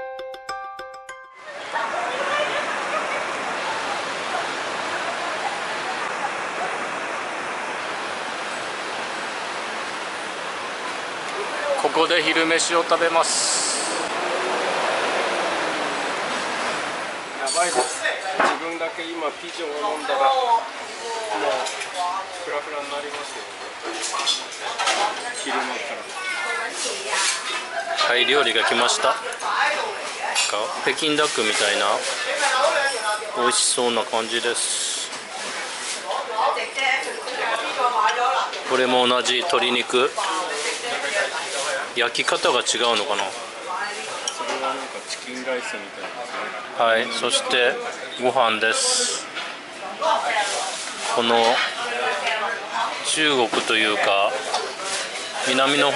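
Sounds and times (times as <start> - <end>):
diners' voices: 0.0 - 55.9
faint voices: 1.5 - 8.4.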